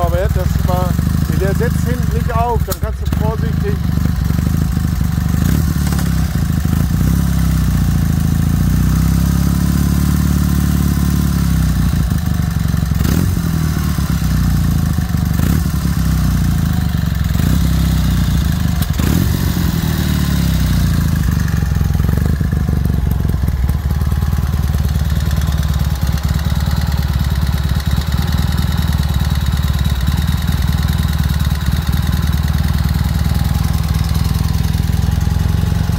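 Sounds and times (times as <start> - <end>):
motorcycle engine idling: 0.0 - 35.9.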